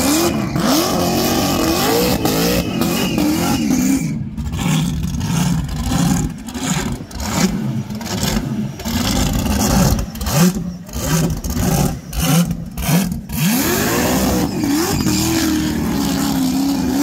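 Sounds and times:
supercharged engine revving: 0.0s - 17.0s.

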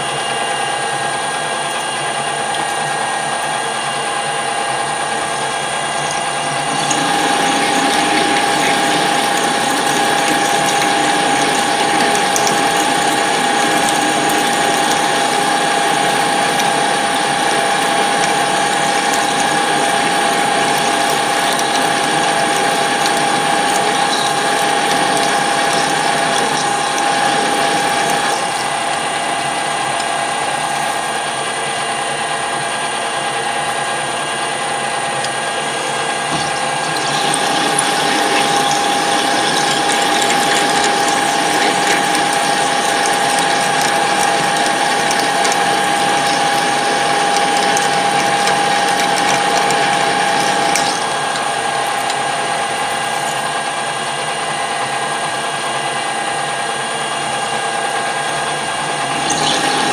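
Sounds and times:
metal lathe gear whine: 0.0s - 59.9s
drill boring into metal: 5.2s - 31.2s, 35.2s - 53.6s, 59.0s - 59.9s.

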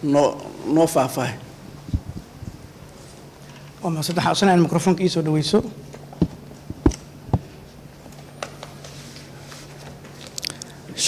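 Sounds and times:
low steady hum: 0.0s - 11.0s
clicks and crackles on microphones: 5.9s - 7.5s.

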